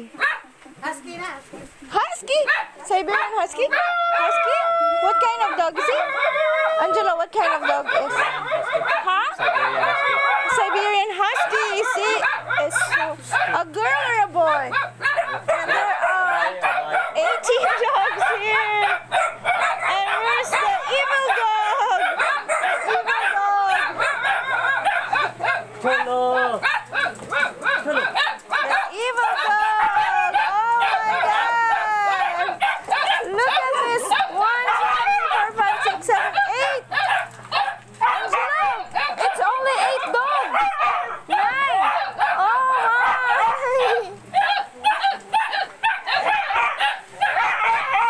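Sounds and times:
small dogs yapping: 0:00.0 - 0:00.6, 0:01.9 - 0:48.0
mix of voices: 0:00.0 - 0:48.0
rooster crowing: 0:03.7 - 0:13.2, 0:13.8 - 0:44.8.

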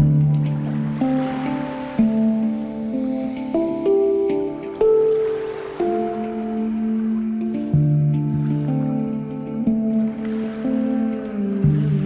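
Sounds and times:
handpan notes ringing: 0:00.0 - 0:12.0.

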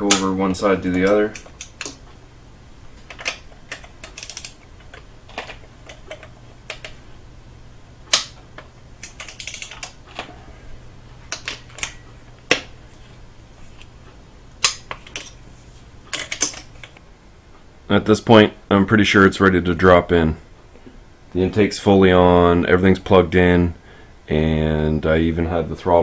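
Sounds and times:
steady low hum: 0:00.0 - 0:26.0
torque wrench clicking: 0:03.2 - 0:04.6.

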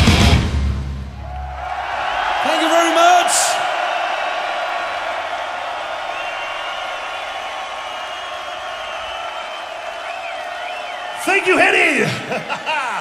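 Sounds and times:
crowd cheering and shouting: 0:01.2 - 0:13.0.

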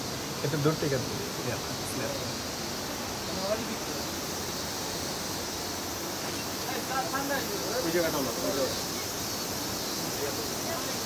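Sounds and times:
rushing hiss-like noise: 0:00.0 - 0:11.0.

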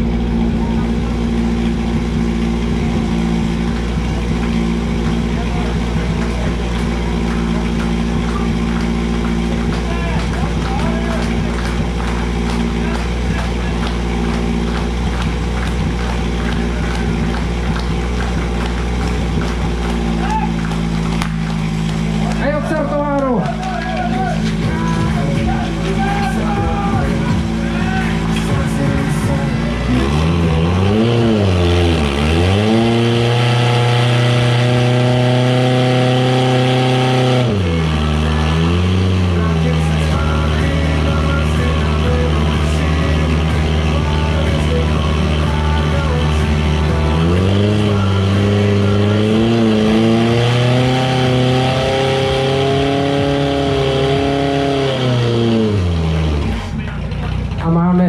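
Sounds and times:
pump engine running hard: 0:00.0 - 0:58.0.

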